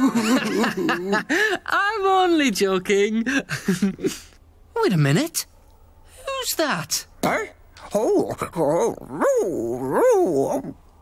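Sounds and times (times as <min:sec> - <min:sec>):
cartoon dog whining and whimpering: 0:08.3 - 0:10.8.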